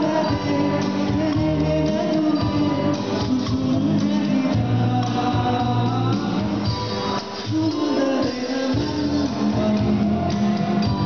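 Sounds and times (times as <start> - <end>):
electronic keyboard: 0.0 - 11.0
man singing into microphone: 0.0 - 11.0
sustained bass notes: 0.0 - 11.0.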